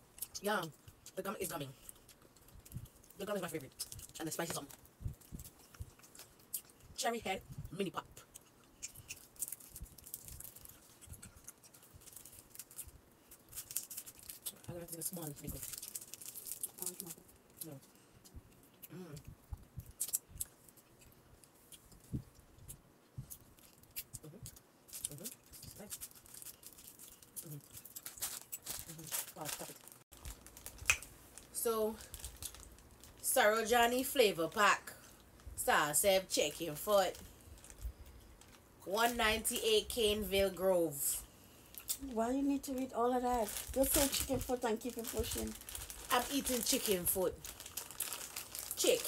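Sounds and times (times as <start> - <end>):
soft mouth sounds: 8.4 - 9.2
plastic wrapper crinkling: 9.0 - 17.8, 23.5 - 33.2, 37.1 - 38.6, 41.7 - 49.0.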